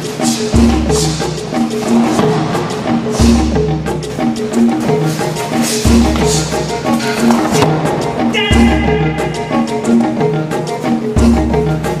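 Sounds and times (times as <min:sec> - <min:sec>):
upbeat instrumental music: 0:00.0 - 0:12.0.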